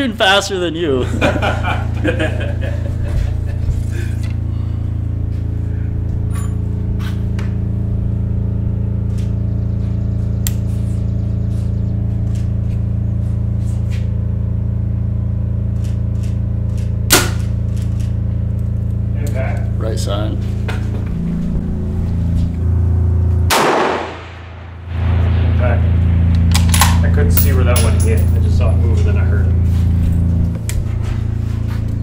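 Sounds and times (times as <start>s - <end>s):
steady low drone: 0.0s - 32.0s.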